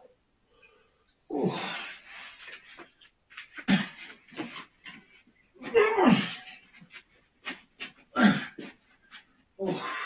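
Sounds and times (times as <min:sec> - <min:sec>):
man panting and groaning: 0:01.3 - 0:02.2, 0:03.6 - 0:04.2, 0:05.6 - 0:06.7, 0:08.0 - 0:08.8, 0:09.6 - 0:10.0.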